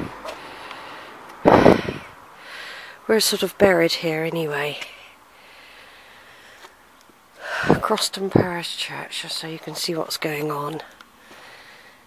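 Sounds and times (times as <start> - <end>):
outdoor background noise: 0.0 - 12.0
puff of air on microphone: 1.4 - 2.1.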